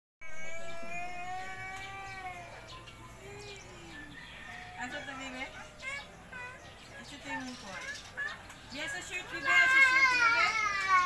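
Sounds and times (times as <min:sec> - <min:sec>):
drawn-out pitched calls: 0:00.2 - 0:11.0.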